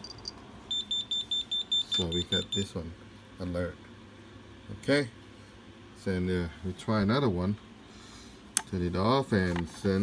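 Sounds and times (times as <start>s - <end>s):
fast high-pitched alert buzzer beeps: 0.7s - 2.7s.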